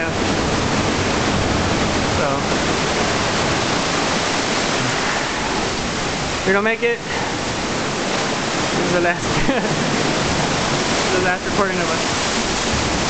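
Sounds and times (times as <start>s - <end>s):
ocean surf washing over rocks: 0.0s - 13.0s.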